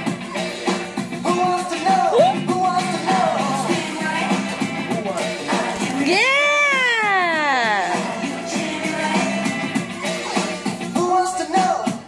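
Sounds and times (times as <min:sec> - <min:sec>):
music: 0:00.0 - 0:12.0
long vocal cry: 0:02.0 - 0:02.5.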